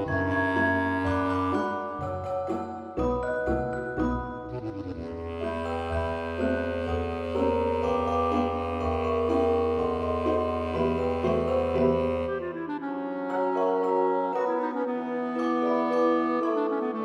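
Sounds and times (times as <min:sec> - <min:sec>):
instrumental background music: 0:00.0 - 0:17.0
low bass line: 0:04.5 - 0:12.3.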